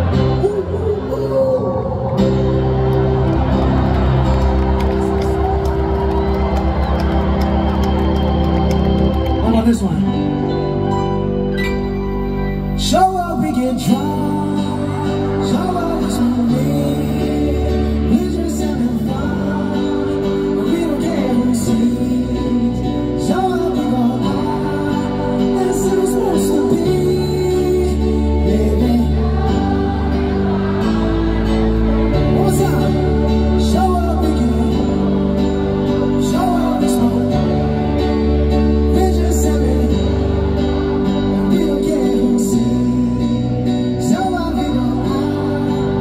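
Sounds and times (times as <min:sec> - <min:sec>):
man singing: 0:00.0 - 0:02.5, 0:12.7 - 0:46.0
electric keyboard sustained chords: 0:00.0 - 0:46.0.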